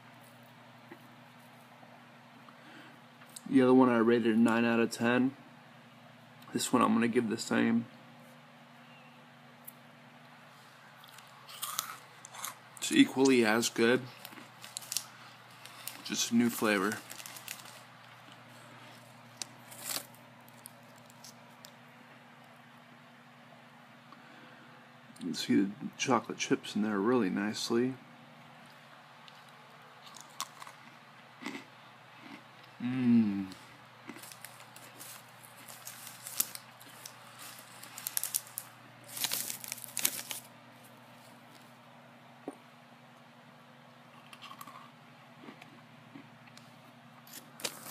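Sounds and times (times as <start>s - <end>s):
freeze-dried food crackling: 11.0s - 21.8s, 33.5s - 41.7s, 47.3s - 47.9s
packet crinkle: 13.2s - 21.7s, 34.1s - 40.9s, 47.3s - 47.9s.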